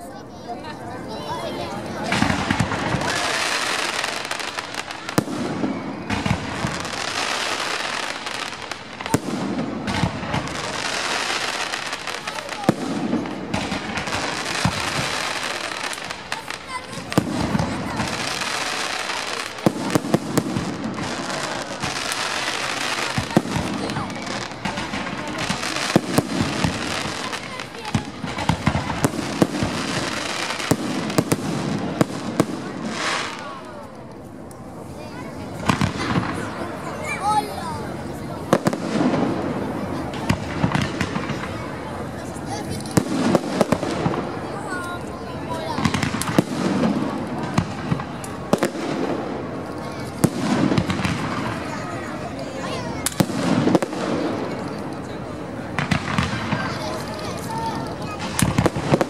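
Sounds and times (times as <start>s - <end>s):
fireworks rushing and crackling: 0.0s - 59.0s
fireworks bangs: 0.6s - 59.0s.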